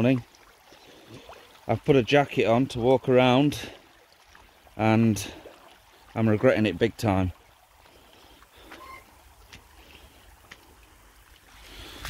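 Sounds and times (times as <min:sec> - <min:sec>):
shallow water trickling: 0:00.0 - 0:12.0
small water splashes: 0:00.0 - 0:12.0.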